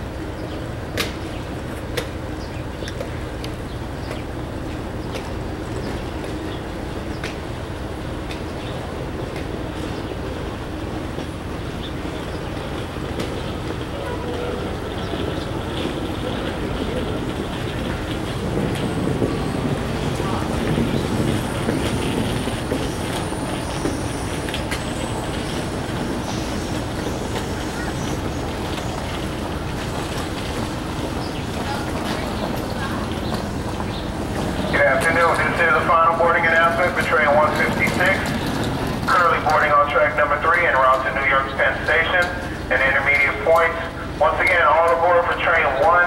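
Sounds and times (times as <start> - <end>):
train equipment rumbling: 0.0 - 46.0.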